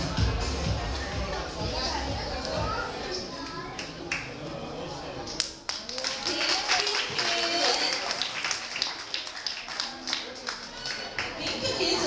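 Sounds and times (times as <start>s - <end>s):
low room murmur: 0.0s - 12.0s
scattered hand clapping: 3.8s - 4.3s, 5.3s - 11.8s.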